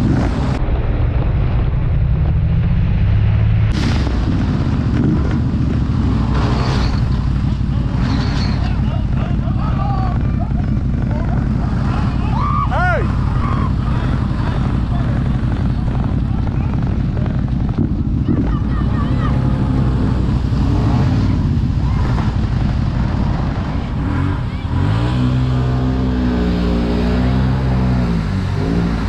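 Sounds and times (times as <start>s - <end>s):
utility vehicle engine running: 0.0s - 0.6s, 2.9s - 29.0s
people shouting and whooping: 8.6s - 16.2s, 18.2s - 20.2s, 21.0s - 22.5s.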